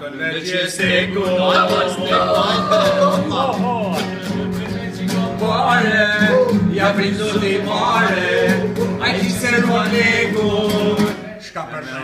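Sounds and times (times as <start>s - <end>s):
man singing: 0.0s - 11.4s
acoustic guitars strummed: 0.8s - 11.4s.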